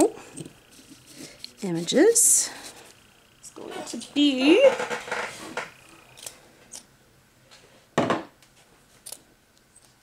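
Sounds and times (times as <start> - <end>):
woman speaking: 1.6 - 2.8, 3.4 - 4.9.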